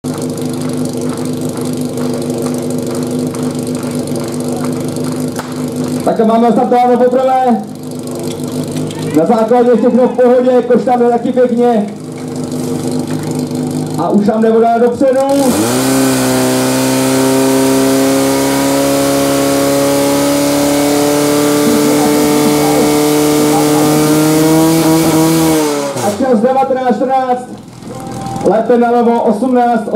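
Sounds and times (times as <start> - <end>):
pump engine idling: 0.0 - 16.0, 21.3 - 29.0.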